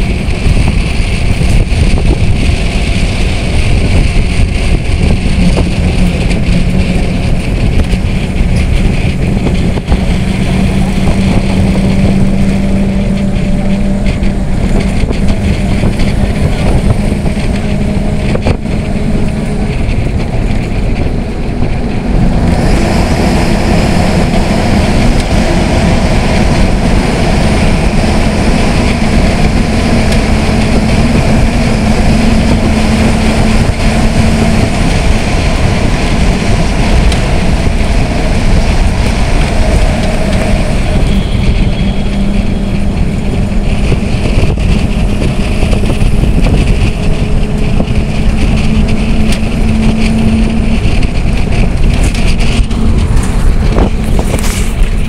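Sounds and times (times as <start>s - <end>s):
continuous train hum: 0.0s - 55.0s
passenger train rumble: 0.0s - 55.0s.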